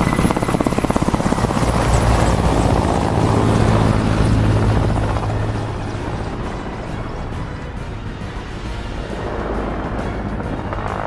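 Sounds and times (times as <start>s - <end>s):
helicopter rotor chopping: 0.0s - 11.0s.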